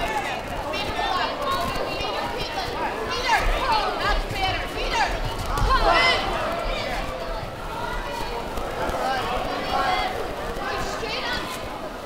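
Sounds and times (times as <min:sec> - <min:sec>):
voices calling out and talking: 0:00.0 - 0:12.0.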